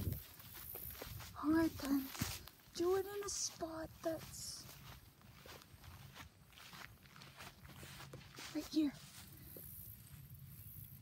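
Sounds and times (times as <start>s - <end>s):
faint footsteps on grass: 0.0s - 11.0s.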